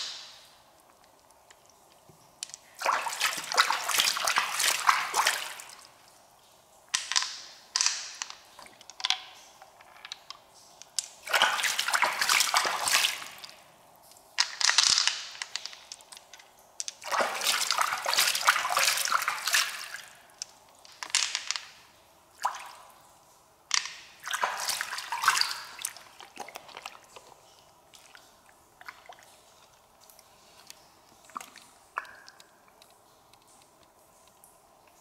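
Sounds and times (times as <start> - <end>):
wet squelching of mussel flesh: 2.7 - 5.9
pearls clicking against shell: 6.9 - 11.2, 14.4 - 17.0.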